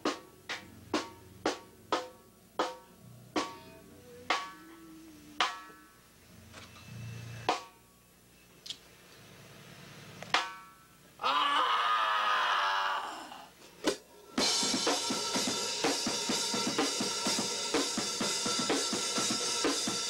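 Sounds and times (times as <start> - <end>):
heavy distorted rock band: 14.4 - 20.0.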